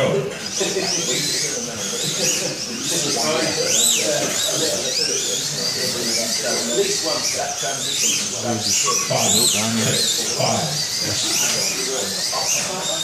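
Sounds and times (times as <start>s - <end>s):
slot car motors whining: 0.0s - 13.0s.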